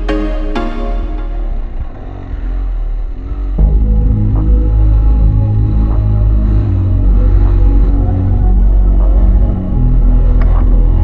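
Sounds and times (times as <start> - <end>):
instrumental music with deep bass: 0.0 - 11.0.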